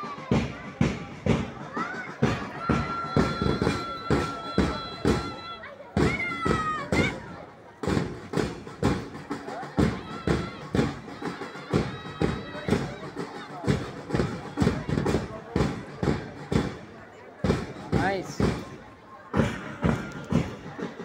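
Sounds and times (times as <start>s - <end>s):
crowd voices: 0.0s - 21.0s
drum marching rhythm: 0.0s - 21.0s.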